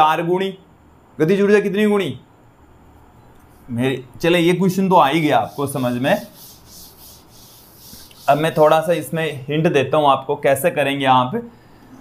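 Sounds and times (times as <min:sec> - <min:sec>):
duster rubbing on chalkboard: 0:04.9 - 0:09.2.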